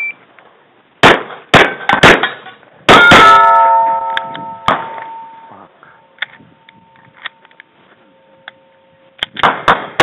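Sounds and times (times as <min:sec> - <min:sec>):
steel targets ringing: 0:01.7 - 0:10.0.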